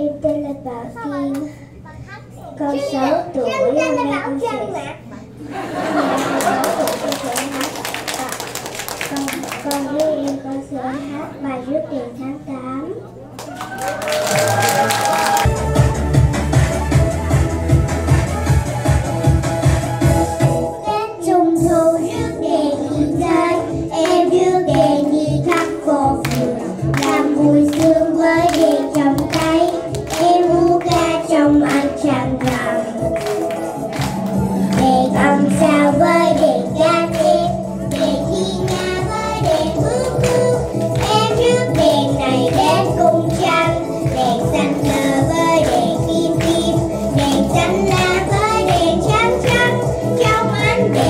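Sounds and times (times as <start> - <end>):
instrumental accompaniment: 15.3 - 51.0
backing track with steady beat: 15.4 - 20.9, 21.5 - 51.0
girls singing together: 21.2 - 51.0.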